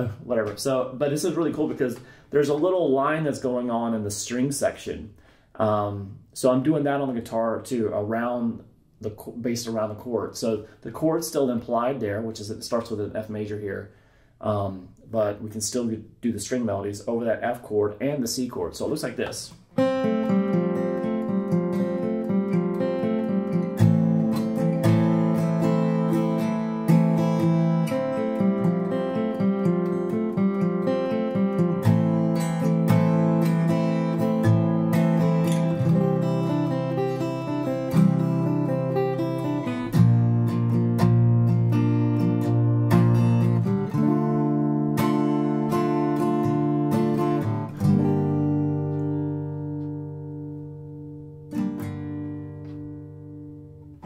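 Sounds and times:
acoustic guitar playing chords: 19.1s - 54.0s.

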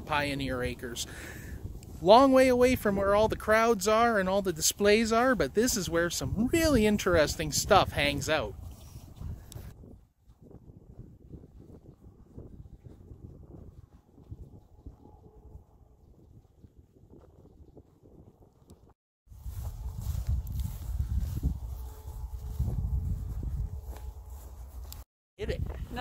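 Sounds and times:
wind rumble on microphone: 0.0s - 26.0s.

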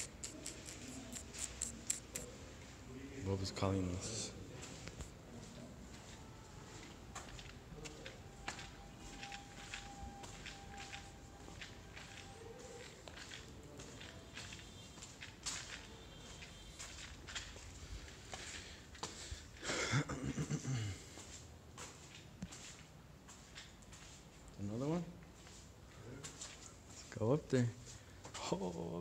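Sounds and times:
footsteps on stone: 4.6s - 19.4s.

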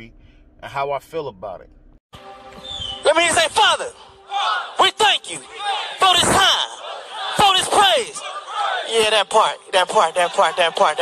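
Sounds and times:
crowd cheering and yelling: 3.0s - 11.0s
man shouting through a microphone: 3.0s - 11.0s.

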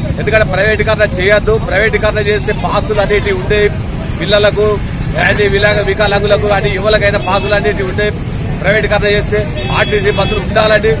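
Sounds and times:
man speaking: 0.0s - 11.0s
street noise rumble: 0.0s - 11.0s.

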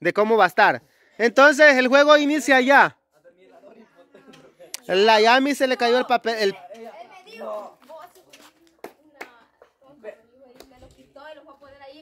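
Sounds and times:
faint people talking: 3.1s - 12.0s.

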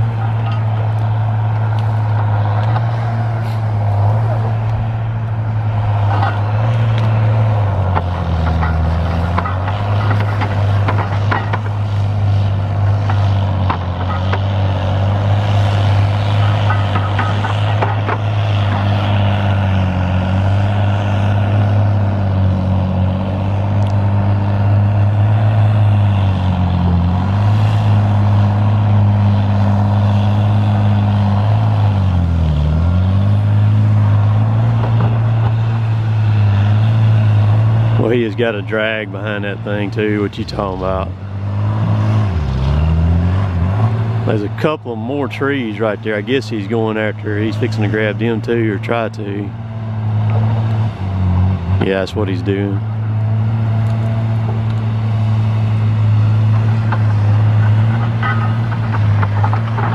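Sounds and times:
heavy diesel engine lugging: 0.0s - 59.9s.

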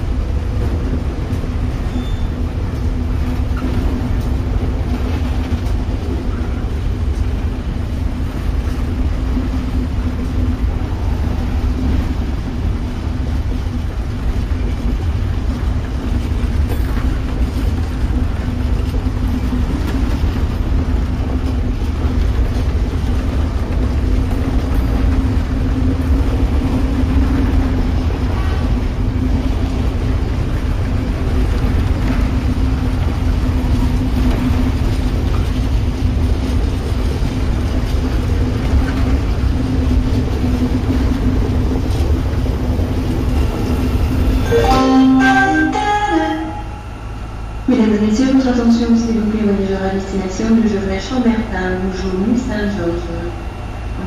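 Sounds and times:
train wheels rumbling on rail: 0.0s - 54.0s
low drone: 43.2s - 50.2s.

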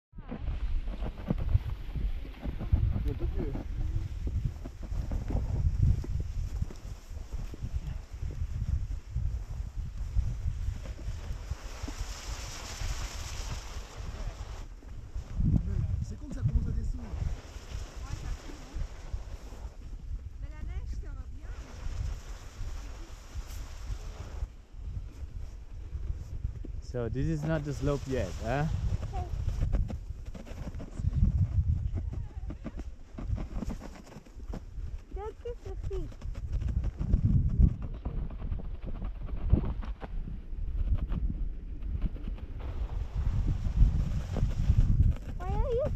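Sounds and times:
wind buffeting microphone: 0.1s - 45.9s
sledge scraping over snow: 0.2s - 45.9s.

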